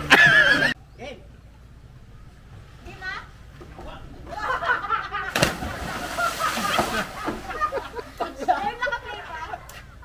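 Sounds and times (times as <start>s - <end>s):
splash into water: 5.3s - 7.6s.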